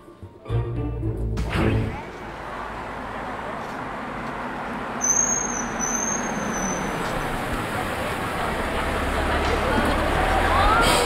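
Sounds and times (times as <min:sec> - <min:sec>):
city street traffic: 0:00.2 - 0:11.0
car engine and tyres rumbling: 0:01.9 - 0:11.0.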